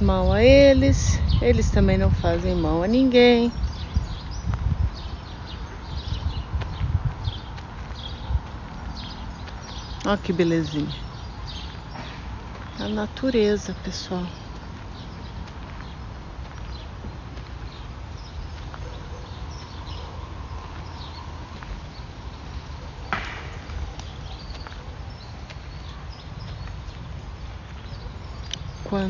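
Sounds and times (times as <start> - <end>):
steady low rumble: 0.0 - 29.0
footsteps on dirt: 2.4 - 29.0.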